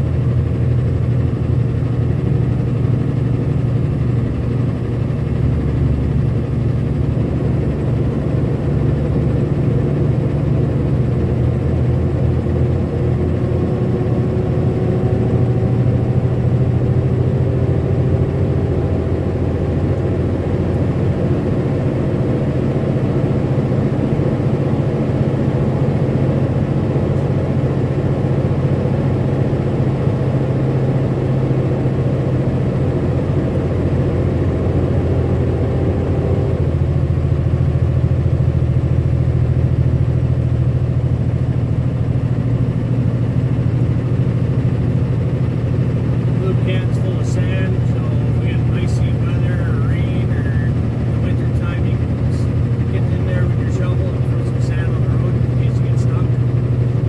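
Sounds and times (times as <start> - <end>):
truck engine and tyres droning: 0.0 - 57.0.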